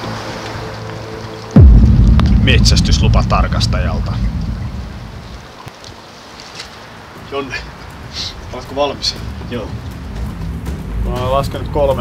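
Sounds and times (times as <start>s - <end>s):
soft background music: 0.0s - 1.6s, 6.8s - 12.0s
dramatic music sting boom: 1.6s - 5.4s.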